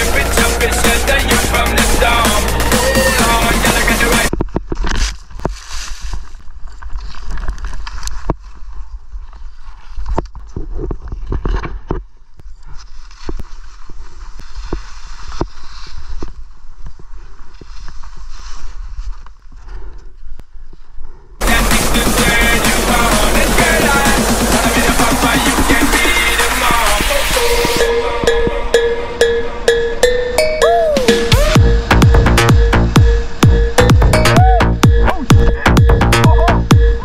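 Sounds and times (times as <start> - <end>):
background music: 0.0 - 4.3, 21.4 - 37.0
skis scraping over snow: 4.9 - 10.6, 12.8 - 19.6.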